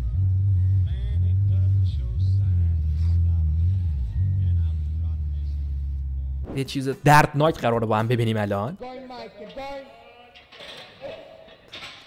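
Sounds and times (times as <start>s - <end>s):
car engine rumbling: 0.0s - 6.8s.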